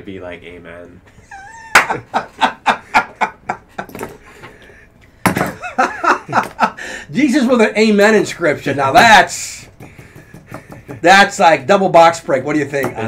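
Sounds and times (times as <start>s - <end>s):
men laughing hard: 1.1s - 4.4s, 5.4s - 7.1s, 9.9s - 11.1s.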